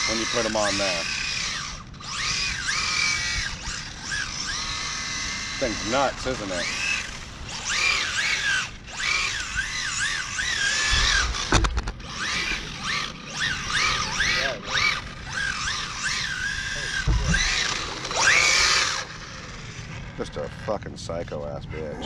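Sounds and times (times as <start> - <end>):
electric toy car motor whining: 0.0 - 22.0
low thumps: 17.0 - 17.6.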